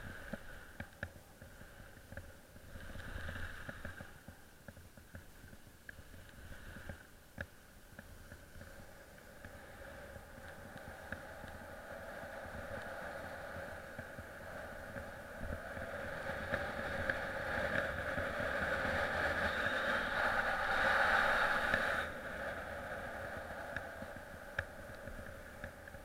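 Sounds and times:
skis sliding over snow: 0.0 - 26.0
wind rumbling on microphone: 0.0 - 26.0.

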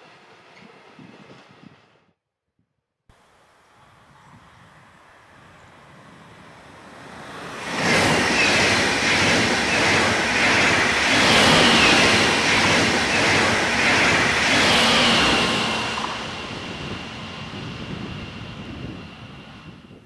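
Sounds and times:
train passing at speed: 3.1 - 20.0
rush of wheels on rail: 3.2 - 20.0.

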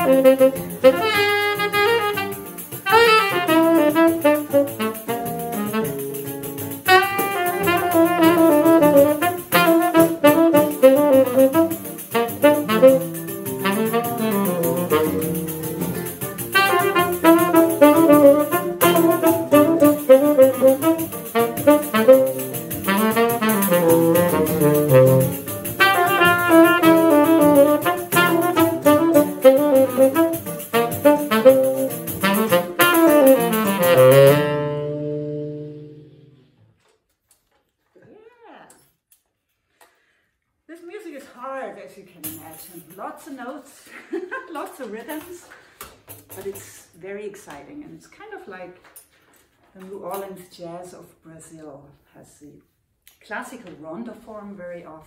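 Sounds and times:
saxophone melody: 0.0 - 36.6
tambourine jingling beat: 0.6 - 34.4.

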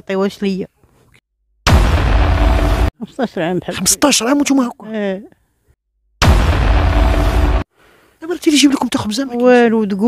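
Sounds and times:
burst of rushing noise: 1.7 - 2.9, 6.2 - 7.7.

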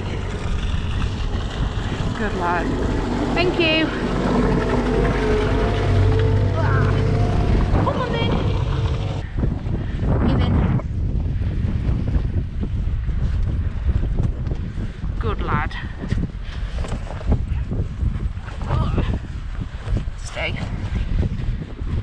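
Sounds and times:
engine droning: 0.0 - 9.3
wind buffeting microphone: 0.0 - 22.0.

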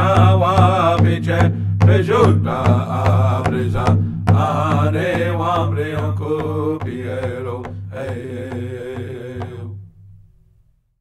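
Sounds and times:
person chanting: 0.0 - 9.8
beaten drum: 0.0 - 10.0.

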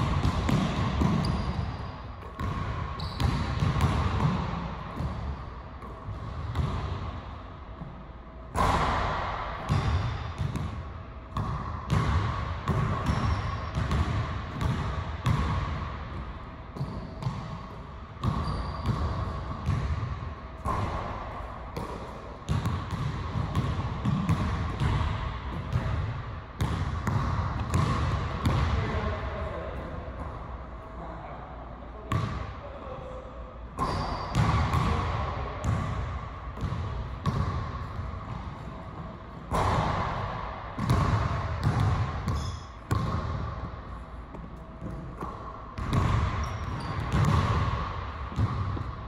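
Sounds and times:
basketball bouncing on gym court: 0.0 - 30.4, 32.1 - 32.5, 33.8 - 49.0.

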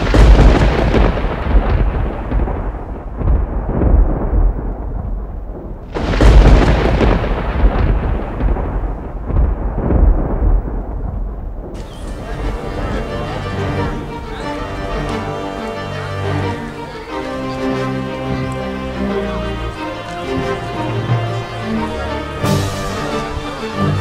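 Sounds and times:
rolling thunder cracks: 0.0 - 24.0.

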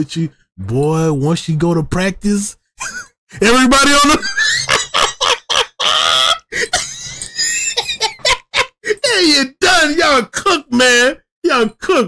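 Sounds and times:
man laughing hard: 2.8 - 3.1, 4.0 - 9.2.

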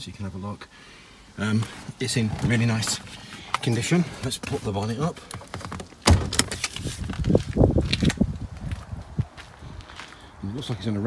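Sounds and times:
handling knocks and clicks: 2.3 - 6.9
footsteps: 5.3 - 10.3.

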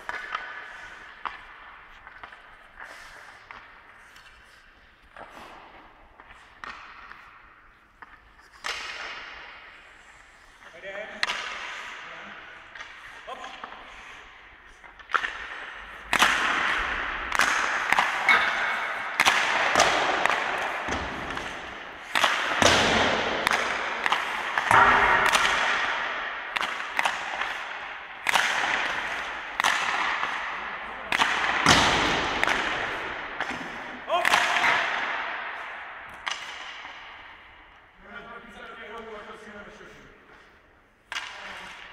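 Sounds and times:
hockey stick hitting puck: 0.0 - 37.8, 40.4 - 41.9.

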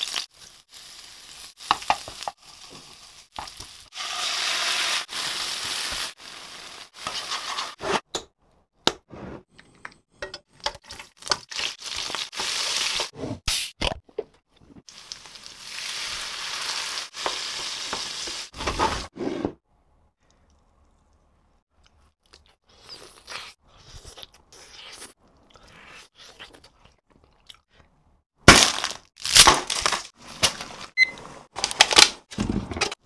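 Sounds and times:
chicken wings sizzling in a pan: 14.9 - 18.6.

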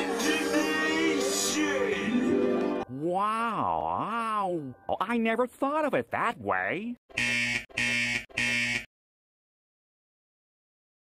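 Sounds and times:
cartoon buzzing blasts: 7.2 - 8.9.

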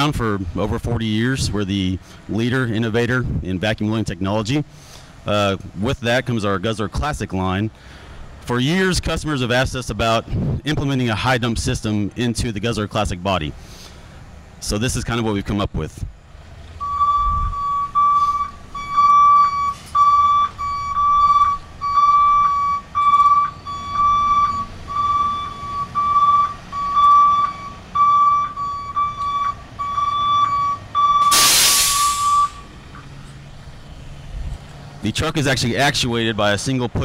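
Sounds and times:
truck engine running: 11.0 - 37.0
truck warning beeper: 16.8 - 33.0
air hiss release: 31.2 - 32.6.

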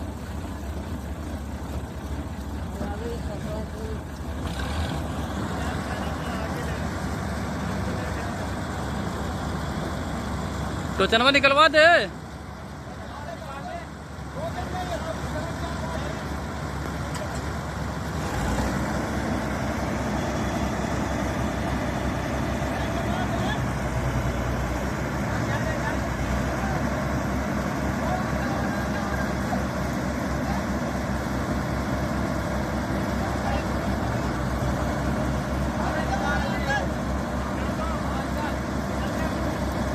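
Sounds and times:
diesel engine under heavy load: 0.0 - 39.9
faint voices: 22.2 - 31.4.

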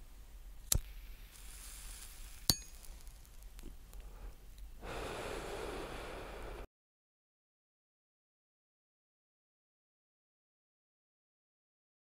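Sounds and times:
long breathy exhale: 4.0 - 6.7.

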